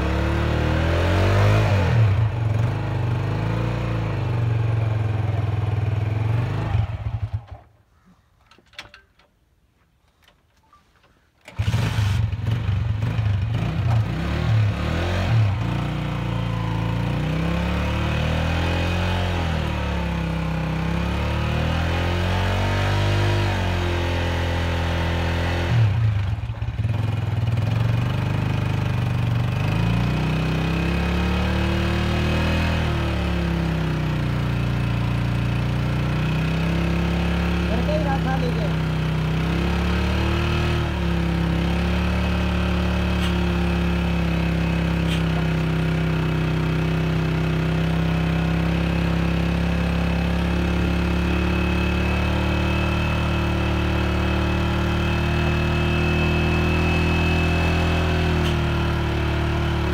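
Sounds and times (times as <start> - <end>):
motorcycle engine revving: 0.0 - 7.7, 11.5 - 59.9.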